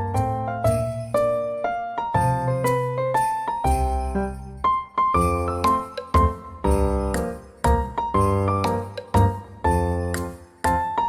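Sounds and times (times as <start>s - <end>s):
bell-like chiming melody: 2.2s - 11.0s.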